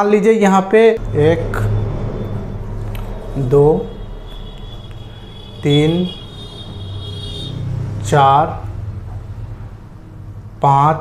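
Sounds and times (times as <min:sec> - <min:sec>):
thin high whine: 0:01.0 - 0:08.0
low background hum: 0:01.0 - 0:11.0.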